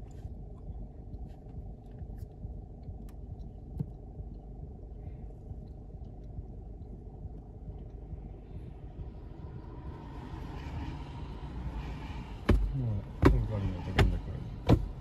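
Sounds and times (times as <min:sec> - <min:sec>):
car idling: 0:00.0 - 0:15.0
tyres hissing on wet road: 0:10.0 - 0:14.2.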